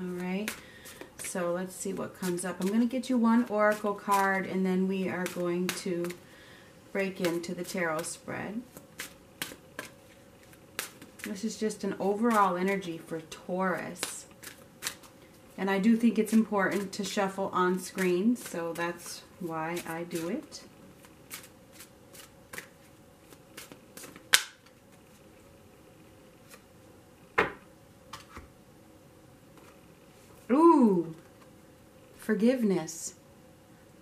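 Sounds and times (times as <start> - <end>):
cards being shuffled: 13.7 - 15.2, 19.8 - 25.4.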